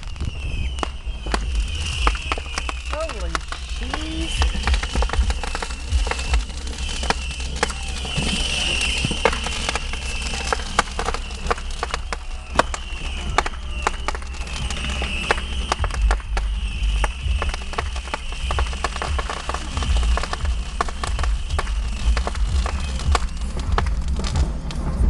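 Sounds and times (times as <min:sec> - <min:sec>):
fireworks popping and crackling: 0:00.0 - 0:25.0
high-pitched whine: 0:00.0 - 0:25.0
low rumble: 0:00.0 - 0:25.0.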